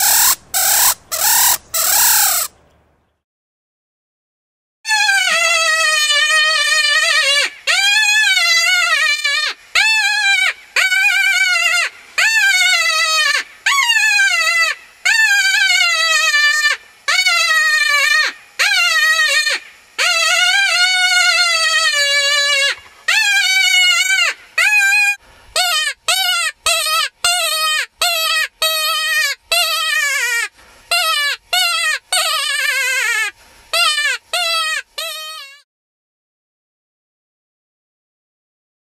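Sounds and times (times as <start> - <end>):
wavering high predator call cries: 0.0 - 2.5, 4.9 - 35.6.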